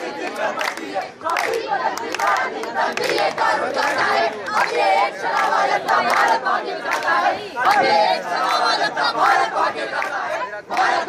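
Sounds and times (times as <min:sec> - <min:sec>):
group shouting and chanting: 0:00.0 - 0:11.0.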